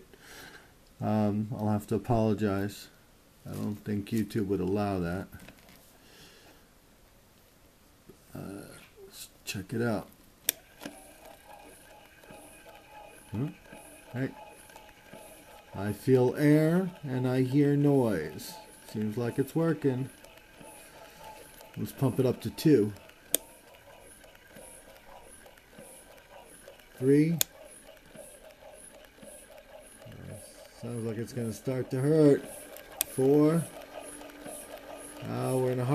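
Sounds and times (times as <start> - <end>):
breast pump pulsing hiss: 9.9 - 35.9.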